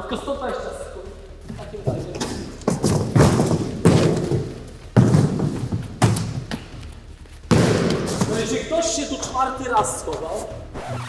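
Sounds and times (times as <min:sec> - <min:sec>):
cardboard boxes thudding: 0:02.7 - 0:06.7, 0:07.5 - 0:08.5.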